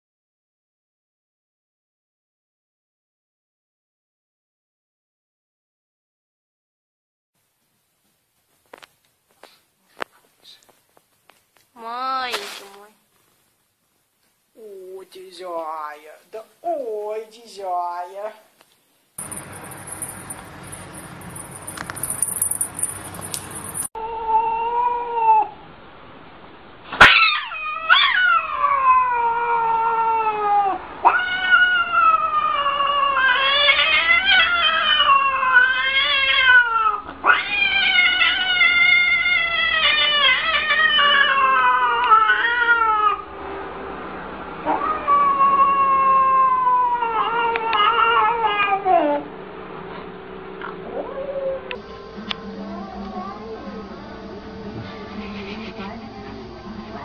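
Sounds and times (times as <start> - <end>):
cat yowling: 24.0 - 25.6, 27.0 - 43.3, 44.6 - 49.3.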